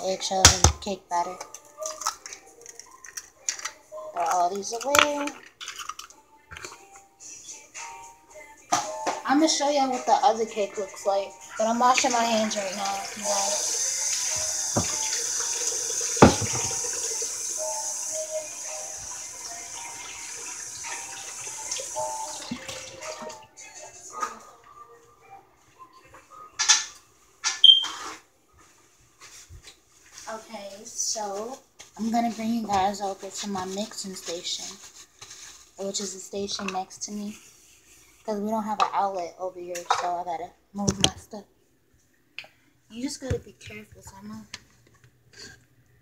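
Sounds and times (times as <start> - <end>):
eggshells cracking by hand: 1.8 - 3.8, 4.8 - 6.8
hands washing under water: 11.8 - 23.4
tap running into sink: 13.4 - 17.2.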